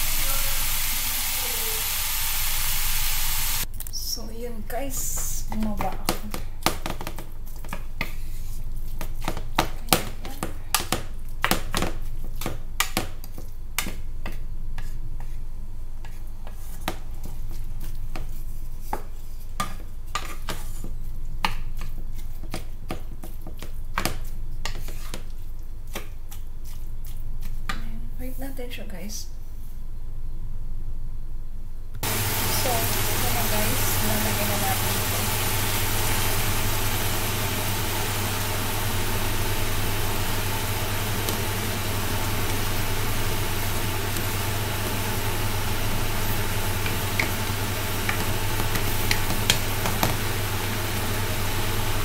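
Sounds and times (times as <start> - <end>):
extractor fan humming: 0.0 - 6.0, 32.0 - 52.0.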